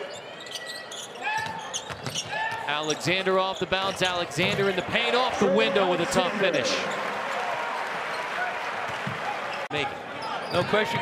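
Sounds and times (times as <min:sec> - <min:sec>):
arena crowd cheering: 0:04.2 - 0:11.0.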